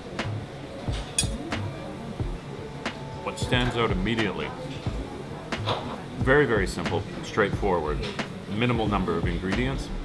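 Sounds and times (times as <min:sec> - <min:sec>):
soft background music: 0:00.0 - 0:10.0
cutlery clinking against dish: 0:00.9 - 0:01.6.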